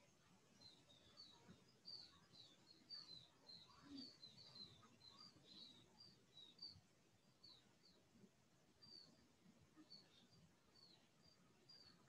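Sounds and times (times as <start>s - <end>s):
faint high bird chirps: 0.0s - 12.0s.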